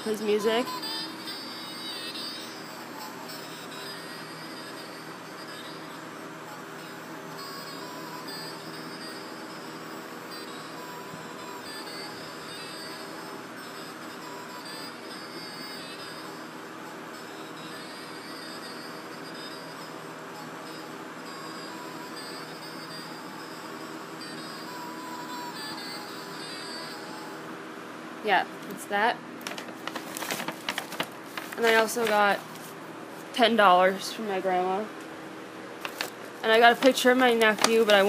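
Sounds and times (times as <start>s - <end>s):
musical toy playing song: 0.0s - 27.5s.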